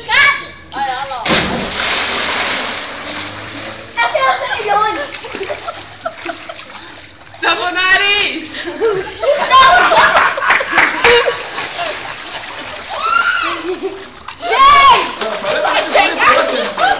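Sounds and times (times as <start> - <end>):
water churning: 1.2 - 8.3, 9.4 - 16.9
loud splash into pool: 1.3 - 3.9
young voices shouting: 12.9 - 13.7, 14.4 - 16.9.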